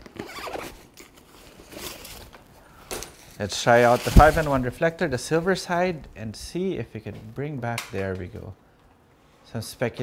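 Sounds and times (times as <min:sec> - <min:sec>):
reflector rustling and scraping: 0:00.5 - 0:05.6.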